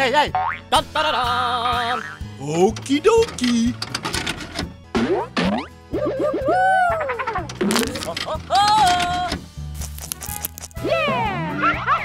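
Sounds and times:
children's background music: 0.0s - 12.0s.

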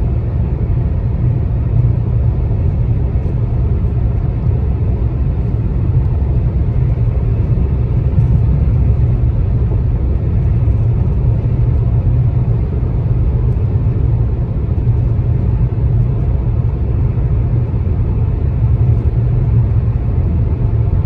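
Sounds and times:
car cabin road noise: 0.0s - 21.0s.

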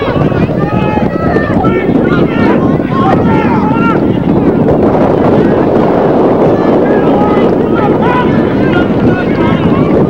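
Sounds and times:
distant voices calling out: 0.0s - 10.0s
wind buffeting microphone: 0.0s - 10.0s.

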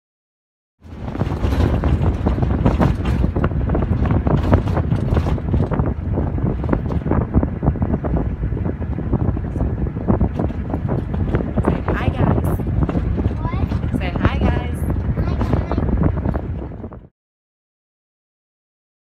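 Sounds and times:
engine and road rumble: 0.8s - 17.1s
vehicle knocks and rattles: 0.8s - 17.1s
wind buffeting microphone: 0.8s - 17.1s.

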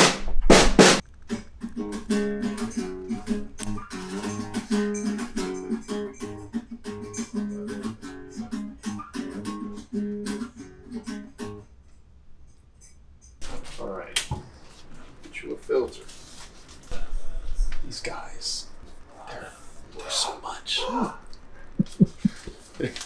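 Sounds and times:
drum kit hits: 0.0s - 1.0s
acoustic guitar strumming chords: 0.9s - 11.7s.

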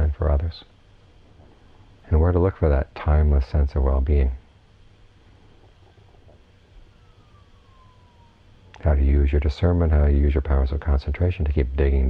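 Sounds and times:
low hum: 0.0s - 12.0s
faint tone gliding down: 5.8s - 9.5s.

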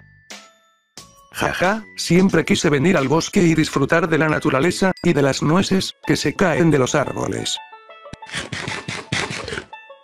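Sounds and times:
light background music: 0.0s - 10.0s
nuts crunching being chewed: 8.2s - 9.7s.

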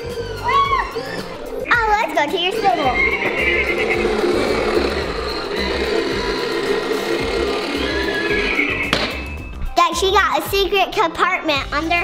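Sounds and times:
music playing: 0.0s - 12.0s
toy horse neighing: 2.5s - 8.9s.

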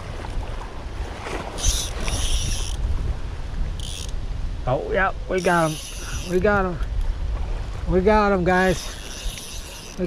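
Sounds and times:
wind rumble on microphone: 0.0s - 10.0s
fishing reel whirring: 1.5s - 2.8s, 3.8s - 4.2s, 5.4s - 6.6s, 8.6s - 10.0s.

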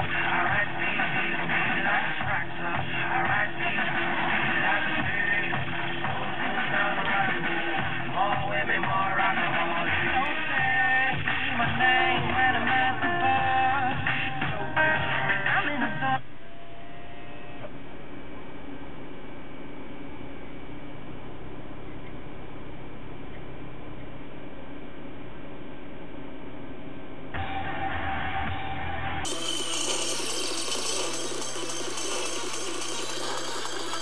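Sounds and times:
steady low hum: 0.0s - 34.0s.

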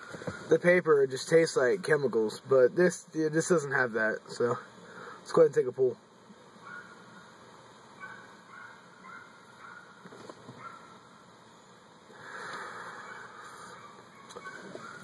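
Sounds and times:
breathy exhale of smoke: 12.1s - 13.8s.

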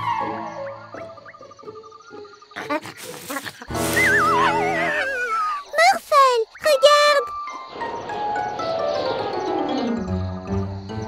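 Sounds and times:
cartoon soundtrack music: 0.0s - 5.7s, 6.6s - 11.0s.

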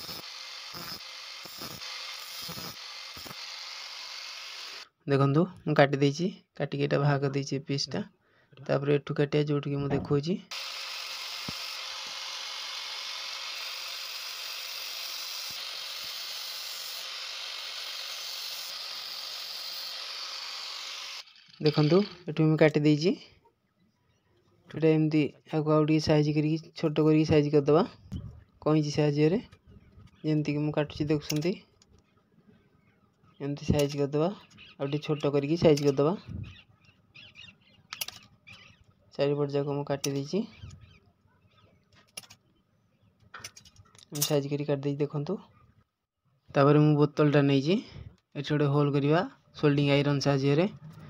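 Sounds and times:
blades scraping metal: 0.0s - 4.8s, 10.6s - 22.3s
angle grinder cutting plastic: 0.0s - 4.9s, 10.5s - 22.4s.

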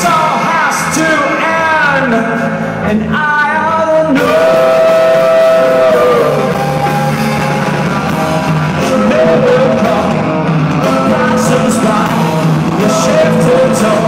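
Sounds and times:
man singing: 0.0s - 7.7s, 8.6s - 14.0s
live rock band playing: 0.0s - 14.0s.

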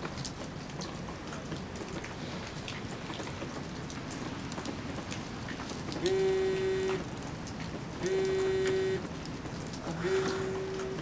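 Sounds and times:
raindrops ticking on surfaces: 0.0s - 11.0s
steady rain hiss: 0.0s - 11.0s.

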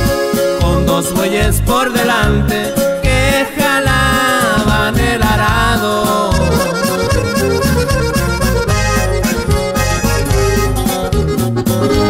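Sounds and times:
bass: 0.0s - 12.0s
button accordion: 0.0s - 12.0s
steady drum beat: 0.0s - 12.0s.

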